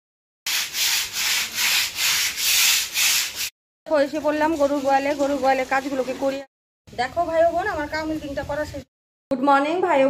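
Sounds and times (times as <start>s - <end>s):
broom scrubbing wet concrete: 0.5s - 3.5s, 4.1s - 6.4s.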